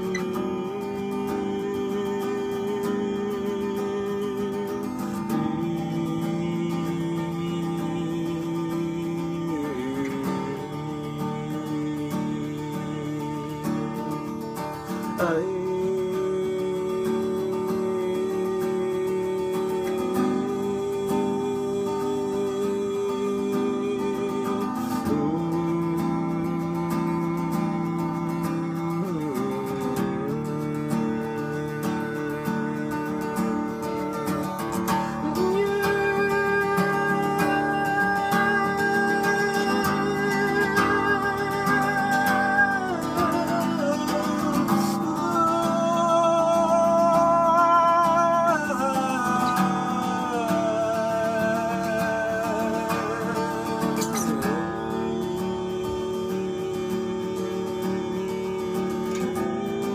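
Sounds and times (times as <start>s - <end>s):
acoustic guitar strumming: 0.0s - 59.9s
wordless singing: 0.0s - 59.9s.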